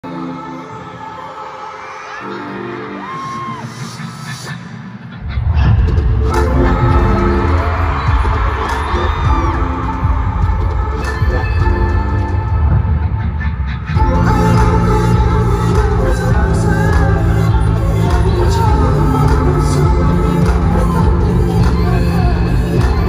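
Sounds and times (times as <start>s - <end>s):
pop concert music over sound system: 0.0s - 23.0s
held synth chords: 4.8s - 23.0s
heavy bass beat: 5.2s - 23.0s.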